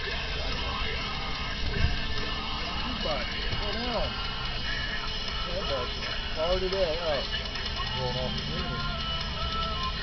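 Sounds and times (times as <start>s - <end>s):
faint indistinct voices talking: 0.0s - 10.0s.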